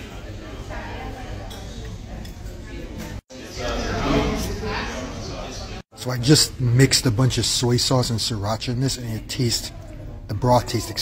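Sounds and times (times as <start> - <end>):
restaurant background chatter: 0.0 - 11.0.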